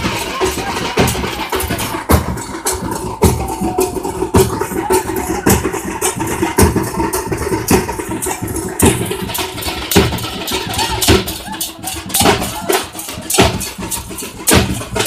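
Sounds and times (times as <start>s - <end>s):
barrel drums beaten hard: 0.0s - 15.0s
crowd noise: 0.0s - 15.0s.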